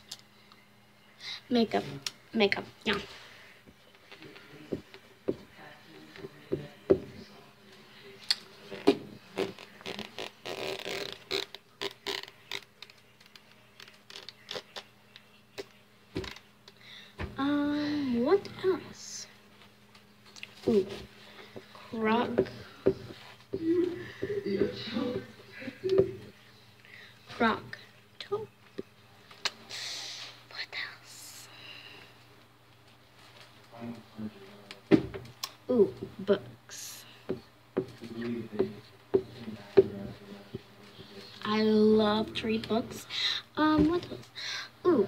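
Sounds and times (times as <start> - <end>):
girl whispering: 29.7 - 31.6.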